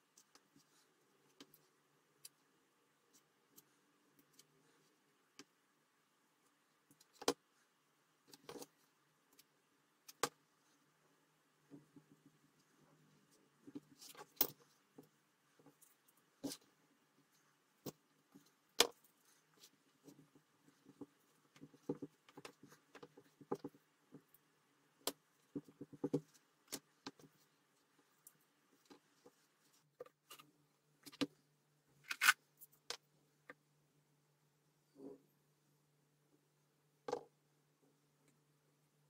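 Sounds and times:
faint steady hum: 0.0s - 39.0s.

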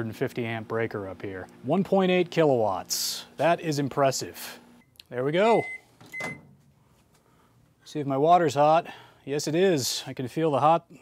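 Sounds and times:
microwave beep: 4.8s - 6.6s.

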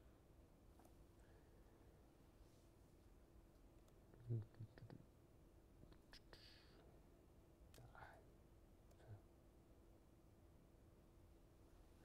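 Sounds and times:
faint whispered murmur: 4.1s - 5.1s, 5.9s - 7.0s, 7.7s - 9.3s.

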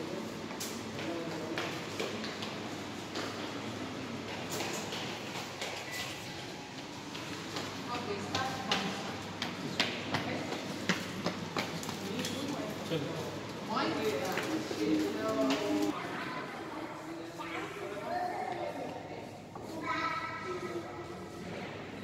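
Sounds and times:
murmur of voices: 11.4s - 22.0s.

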